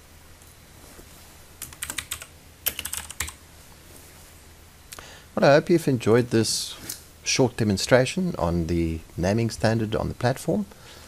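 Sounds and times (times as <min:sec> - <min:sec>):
computer keyboard typing: 0:01.6 - 0:03.4.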